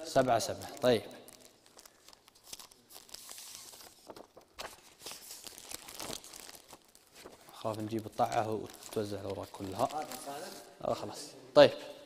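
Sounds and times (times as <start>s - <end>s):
paper crinkles: 0.2s - 10.7s
paper rustling: 0.5s - 10.6s.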